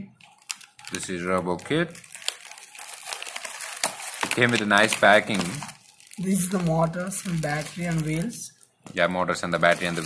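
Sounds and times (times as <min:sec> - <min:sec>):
plastic bags crinkling: 0:00.2 - 0:10.0.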